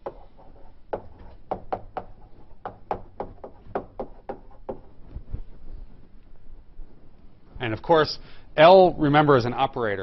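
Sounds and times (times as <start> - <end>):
chalk tapping on blackboard: 0.0 - 5.0.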